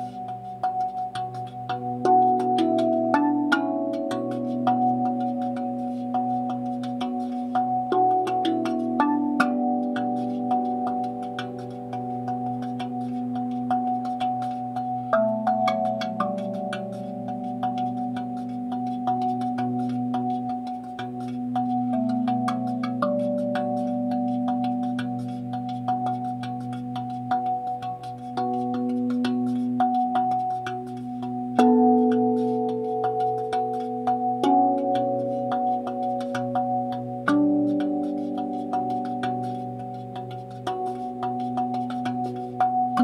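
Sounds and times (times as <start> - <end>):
steel tongue drum notes: 0.0 - 43.0.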